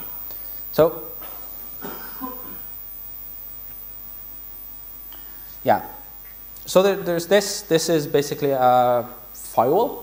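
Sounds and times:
electrical mains hum: 0:00.0 - 0:10.0
low background hiss: 0:00.0 - 0:10.0.

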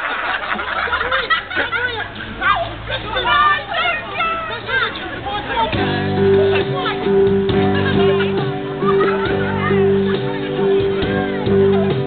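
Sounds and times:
voices: 0:00.6 - 0:12.0.

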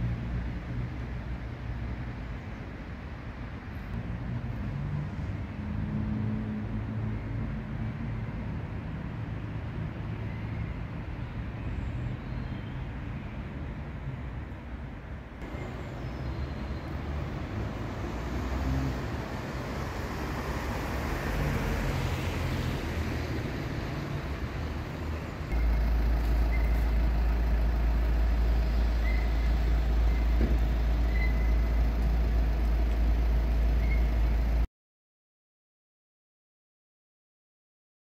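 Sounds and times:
road traffic: 0:00.0 - 0:34.7.

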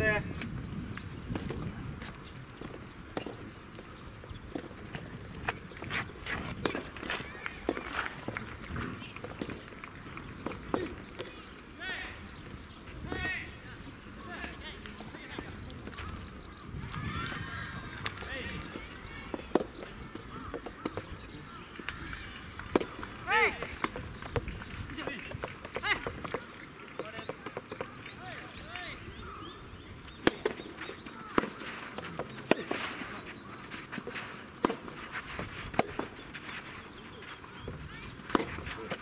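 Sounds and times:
tennis balls popping: 0:00.4 - 0:13.4, 0:14.1 - 0:29.3, 0:30.0 - 0:39.0
distant voices and shouts: 0:10.8 - 0:12.4, 0:13.0 - 0:24.0, 0:28.1 - 0:29.6.

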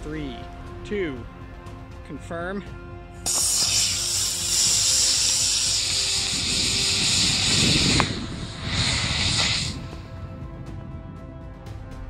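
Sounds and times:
rocket motor rushing hiss: 0:03.2 - 0:10.2.

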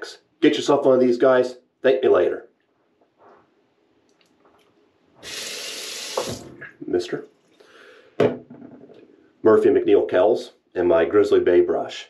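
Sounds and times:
sink tap turned on: 0:05.2 - 0:06.7
water running into basin: 0:05.2 - 0:06.8.

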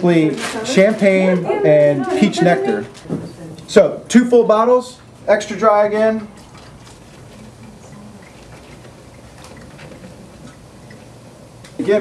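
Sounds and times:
liquid pouring into a glass dispenser: 0:06.2 - 0:11.2
fizzing bubbles crackle: 0:06.2 - 0:11.8.

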